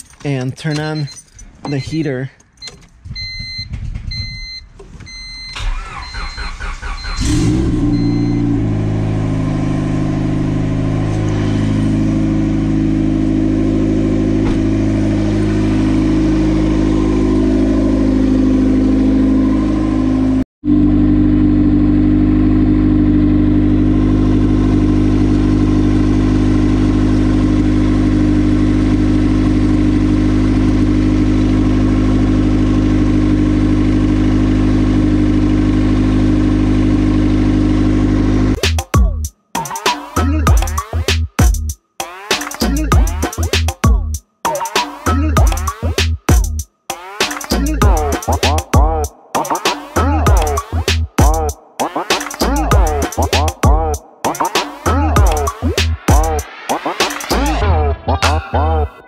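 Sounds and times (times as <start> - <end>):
car engine cranking and starting: 0.0 - 20.4
car warning chime beeps: 0.3 - 8.6
car engine idling: 5.6 - 38.6.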